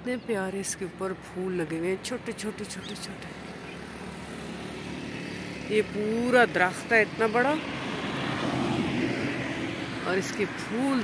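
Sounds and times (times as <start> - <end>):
truck driving past: 1.8 - 11.0.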